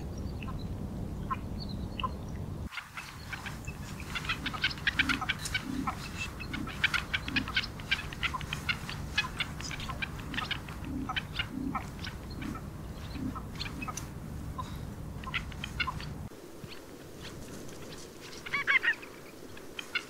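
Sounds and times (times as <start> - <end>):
bird soft low calls: 0.0 - 20.0.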